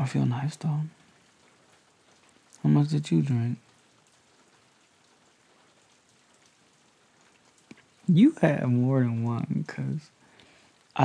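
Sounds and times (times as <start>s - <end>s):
faint rain: 0.0s - 11.0s.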